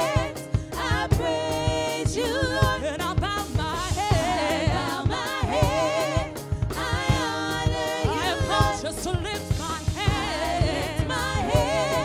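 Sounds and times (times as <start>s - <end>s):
instrumental backing with drum beat: 0.0s - 12.0s
women singing in harmony: 0.0s - 12.0s.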